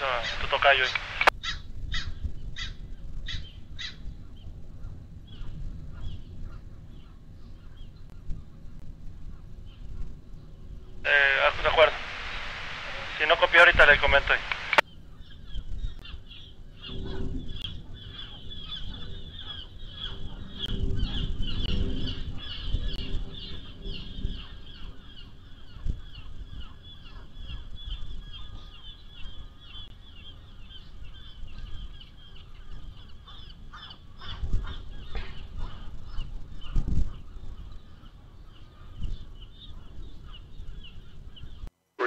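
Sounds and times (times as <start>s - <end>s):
flock of birds chattering: 0.0s - 10.4s, 11.1s - 41.7s
low rumble: 16.9s - 26.8s.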